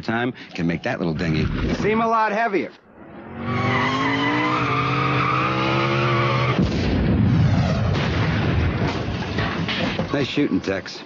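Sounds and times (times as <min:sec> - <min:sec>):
engine revving hard: 0:03.0 - 0:06.6
tires squealing: 0:03.1 - 0:06.6.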